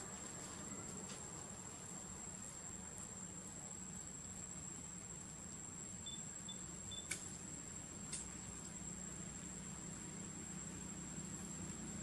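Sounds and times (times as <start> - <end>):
high-pitched insect trill: 3.7 - 7.1.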